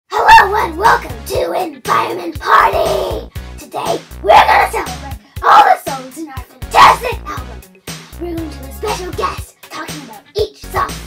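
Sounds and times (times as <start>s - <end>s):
child speaking excitedly: 0.1s - 11.0s
low background music: 0.1s - 11.0s.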